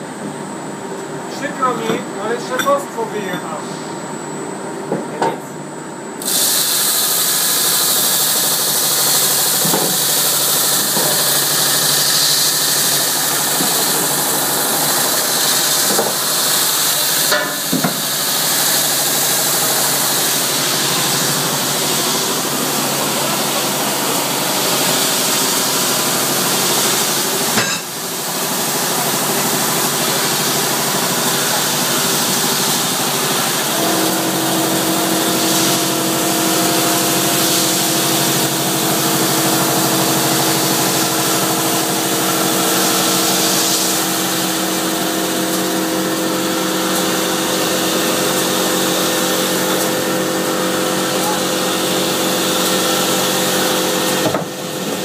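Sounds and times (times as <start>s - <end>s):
deburring machine running: 5.8s - 55.0s.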